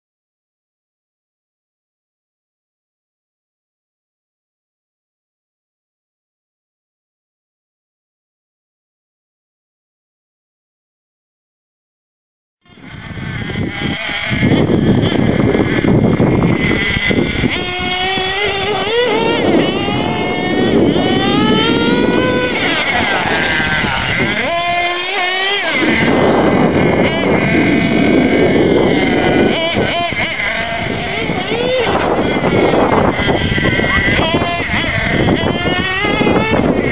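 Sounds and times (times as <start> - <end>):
small nitro engine revving: 12.7 - 36.9.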